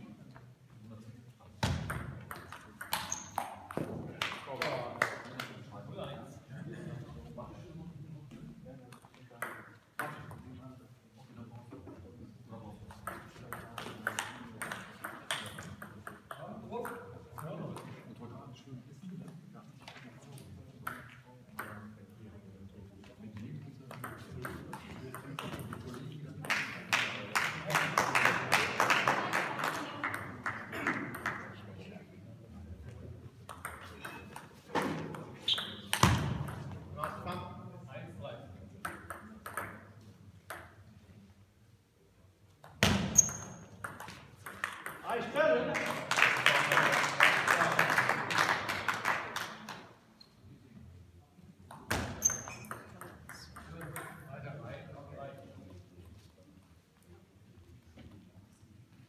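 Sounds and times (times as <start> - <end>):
spectators clapping: 26.5 - 31.4, 45.6 - 49.8.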